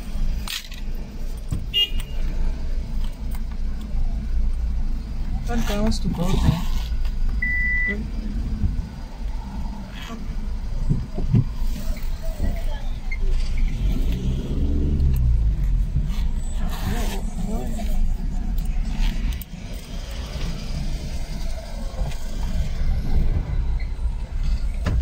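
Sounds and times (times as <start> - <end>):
car engine and tyres rumbling: 0.0 - 25.0.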